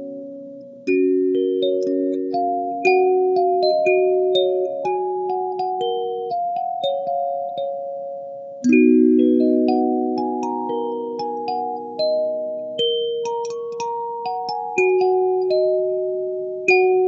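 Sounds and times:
kalimba playing slow melody: 8.6s - 17.0s.

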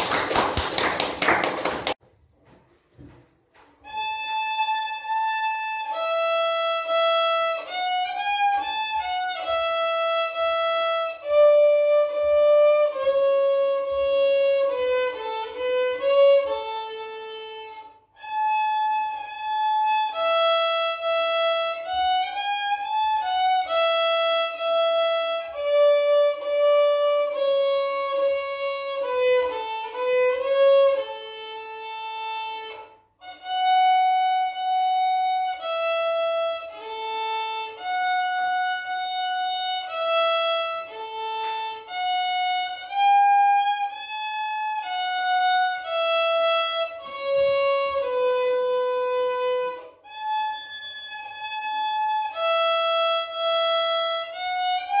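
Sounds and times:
solo violin melody: 3.6s - 55.0s.

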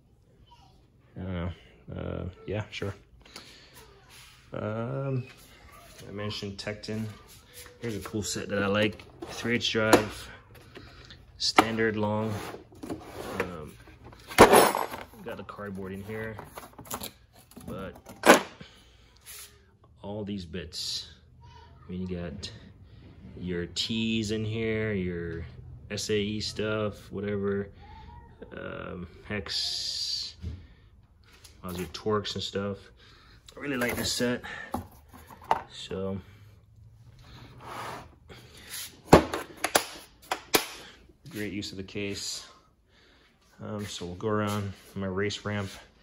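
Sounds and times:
plastic case rustling: 15.9s - 18.4s.

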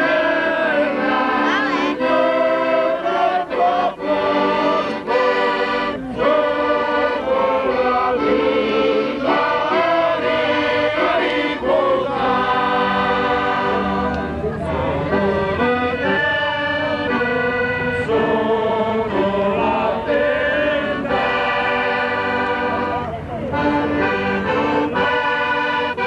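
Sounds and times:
group of people singing: 0.0s - 23.0s, 23.6s - 26.0s
piano accordion playing folk tune: 0.0s - 26.0s.

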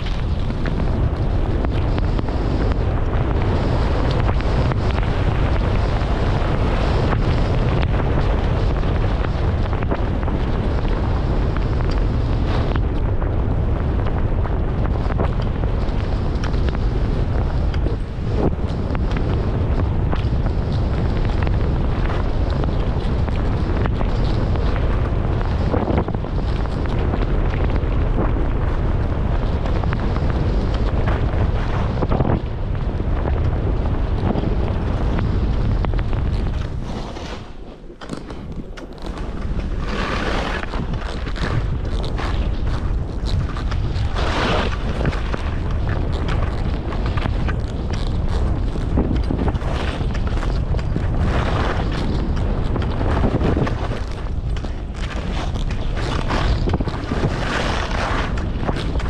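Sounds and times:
skis sliding on snow: 0.0s - 59.0s
wind buffeting microphone: 0.0s - 59.0s.

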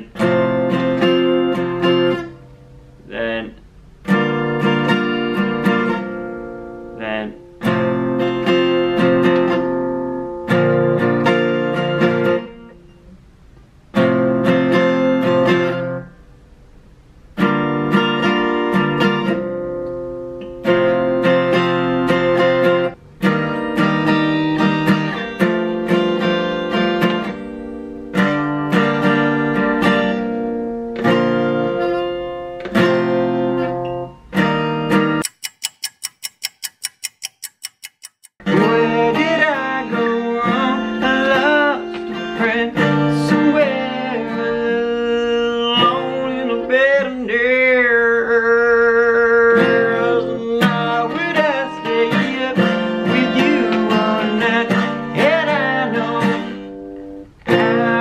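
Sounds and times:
acoustic guitar strumming chords: 0.0s - 13.3s, 13.9s - 16.5s, 17.3s - 35.3s, 38.4s - 58.0s.

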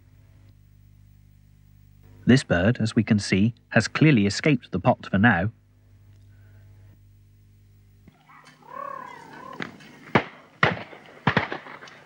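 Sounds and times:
wavering whine-like call: 8.1s - 9.9s
shotgun shots: 10.0s - 12.0s.

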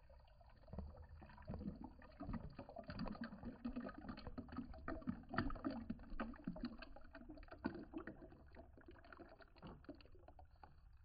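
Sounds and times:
juice pouring into glass jar: 0.0s - 11.0s.

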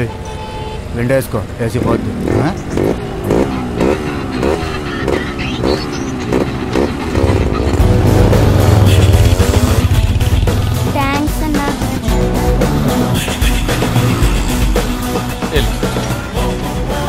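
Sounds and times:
motorcycle engine revving: 1.4s - 17.0s
background music: 2.6s - 17.0s
rhythmic repeating pattern: 2.7s - 17.0s.

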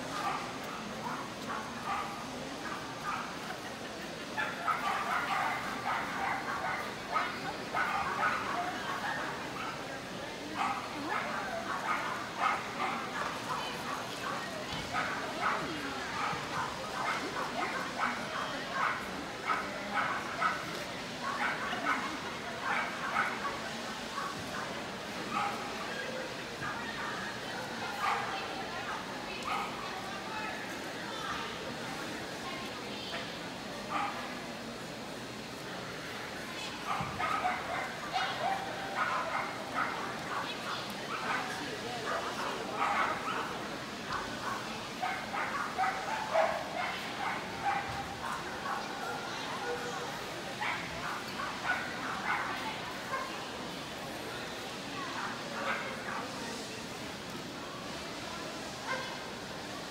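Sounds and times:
people chattering: 0.0s - 59.9s
dogs barking and yipping: 0.2s - 3.3s, 4.4s - 9.8s, 10.6s - 23.6s, 36.8s - 43.6s, 44.4s - 49.9s, 50.6s - 53.3s.

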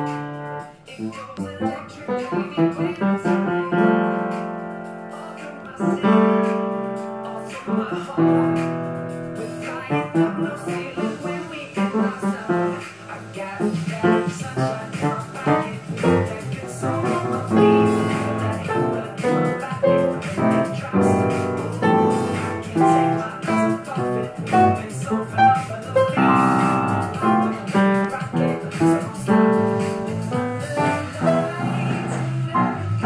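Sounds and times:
pop song with guitar from tv: 0.0s - 33.0s
upright piano playing: 0.0s - 33.0s.

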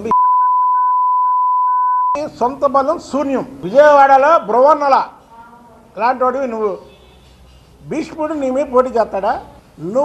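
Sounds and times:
censor bleep tone: 0.0s - 2.2s.

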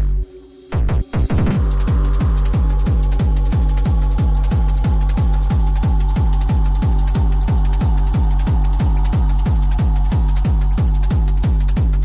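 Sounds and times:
techno kick drum pounding: 0.0s - 12.0s.

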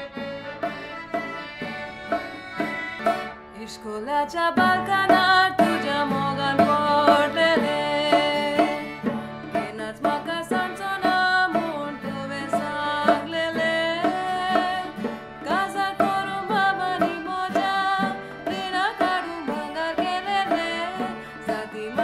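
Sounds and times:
percussive beat: 0.0s - 3.4s, 4.6s - 22.0s
accordion: 0.0s - 3.8s, 4.4s - 22.0s
acoustic guitar: 0.0s - 22.0s
woman singing: 3.5s - 22.0s.

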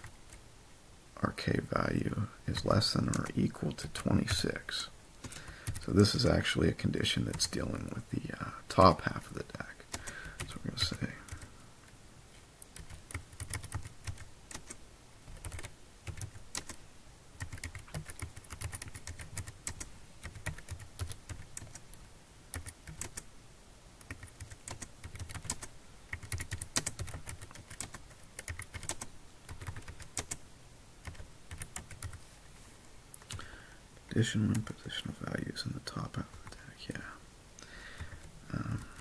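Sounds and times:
typing on computer keyboard: 5.2s - 5.8s, 12.8s - 16.8s, 17.4s - 21.9s, 22.5s - 23.3s, 24.0s - 30.4s, 31.0s - 32.2s.

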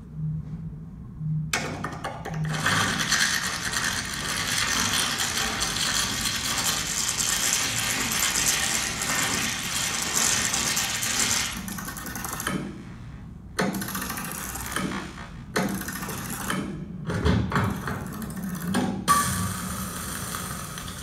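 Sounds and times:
plastic balls clattering: 1.8s - 12.5s.

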